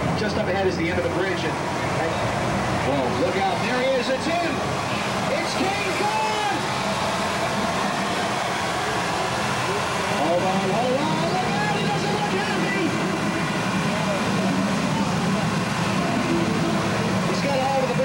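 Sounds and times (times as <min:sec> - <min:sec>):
vehicle humming: 0:00.0 - 0:18.0.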